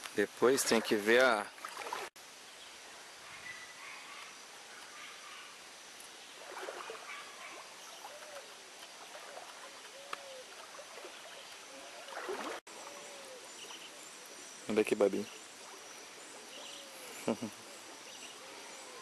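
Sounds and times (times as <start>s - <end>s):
flowing river water hiss: 0.0s - 19.0s.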